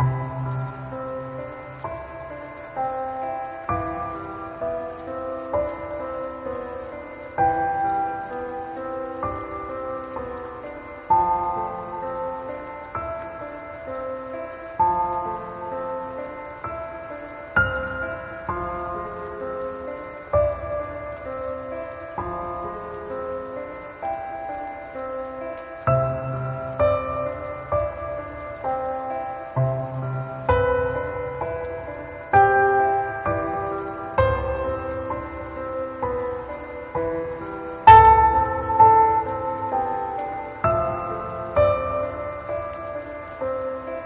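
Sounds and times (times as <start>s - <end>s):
rain hiss: 0.0s - 44.0s
slow solo piano: 0.0s - 44.0s.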